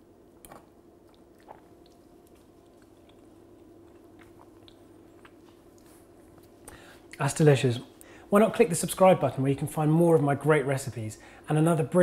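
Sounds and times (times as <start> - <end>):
low steady hum: 0.0 - 12.0
quiet chewing: 0.4 - 7.2.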